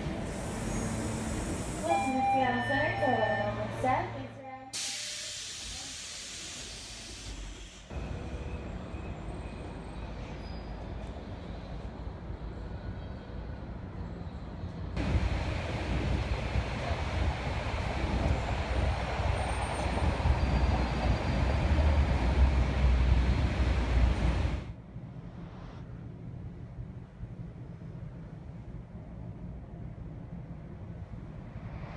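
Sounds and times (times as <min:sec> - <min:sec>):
low rumble with hiss: 0:22.4 - 0:31.9.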